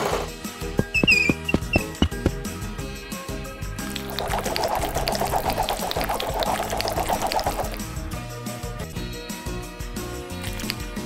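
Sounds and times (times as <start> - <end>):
background music: 0.0 - 11.0
liquid pouring and gurgling: 3.8 - 7.9, 10.4 - 11.0.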